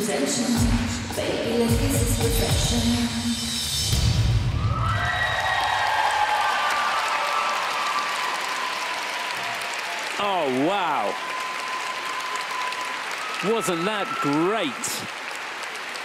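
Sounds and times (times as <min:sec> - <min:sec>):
crowd applauding and cheering: 0:04.3 - 0:16.0.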